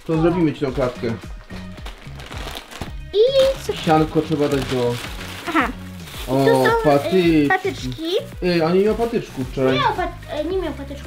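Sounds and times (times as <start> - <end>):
background music: 0.0 - 11.0
plastic shopping bag rustling: 1.5 - 10.5.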